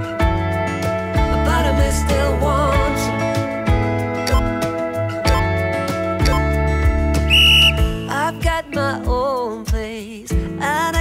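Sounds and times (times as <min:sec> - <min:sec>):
pop song with steady beat: 0:00.0 - 0:11.0
person singing: 0:01.2 - 0:03.4, 0:08.0 - 0:11.0
high whistle-like signal tone: 0:07.3 - 0:08.4.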